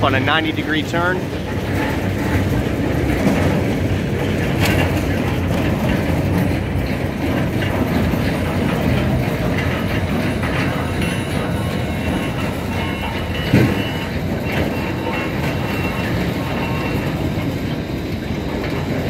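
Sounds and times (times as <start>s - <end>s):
barrier wheels rolling on pavement: 0.0s - 19.0s
steel sections rattling and clanking: 0.0s - 19.0s.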